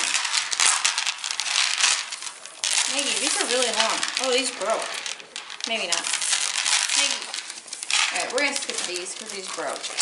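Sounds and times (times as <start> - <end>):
bead necklaces rattling and clicking: 0.0 - 10.0.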